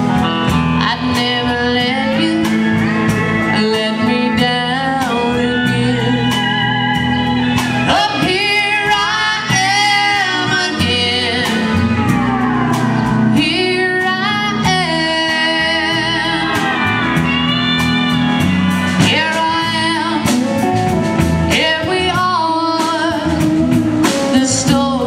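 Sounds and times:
bass guitar: 0:00.0 - 0:25.0
drum kit beat: 0:00.0 - 0:25.0
electric guitar: 0:00.0 - 0:25.0
pedal steel guitar: 0:00.0 - 0:25.0
woman singing with vibrato: 0:00.4 - 0:25.0.

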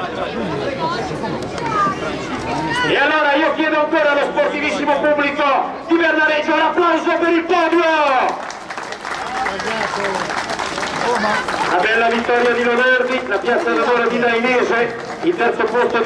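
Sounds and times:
crowd applause: 0:08.1 - 0:16.0.

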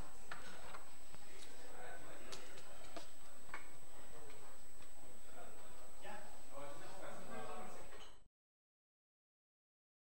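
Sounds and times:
murmur of voices: 0:00.0 - 0:08.0.

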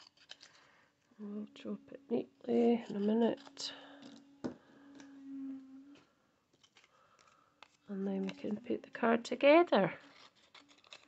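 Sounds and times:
short low hum: 0:04.1 - 0:06.1.

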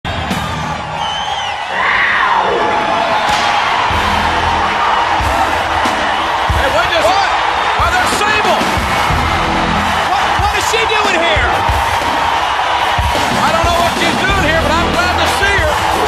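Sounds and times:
crowd cheering and whistling: 0:00.0 - 0:16.0
music with heavy beats: 0:03.3 - 0:16.0.

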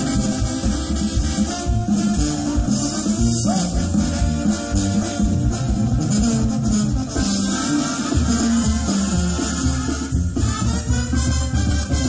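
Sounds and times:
live band music: 0:00.0 - 0:12.0
moving bass line: 0:00.0 - 0:12.0.

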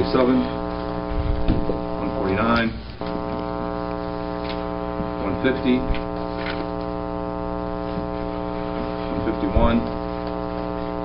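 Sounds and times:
mains hum: 0:00.0 - 0:11.0
muffled words: 0:08.2 - 0:10.4.

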